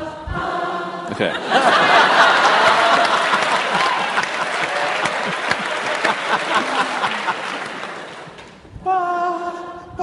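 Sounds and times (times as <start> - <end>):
crowd singing: 0.0 - 3.8
audience applauding: 1.6 - 8.6.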